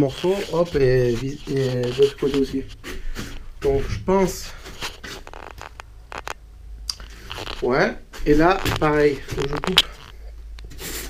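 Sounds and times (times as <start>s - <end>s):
foam board scraping on metal: 0.0s - 3.3s
sharp clicks: 5.2s - 7.6s.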